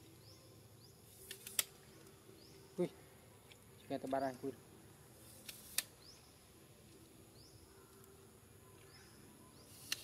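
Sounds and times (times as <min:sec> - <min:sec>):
sharp clicks: 0:01.2 - 0:02.1, 0:05.4 - 0:06.0.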